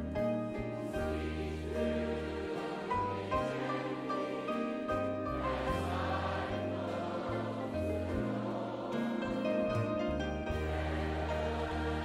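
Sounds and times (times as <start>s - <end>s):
congregation singing: 0.0s - 12.0s
instrumental accompaniment: 0.0s - 12.0s.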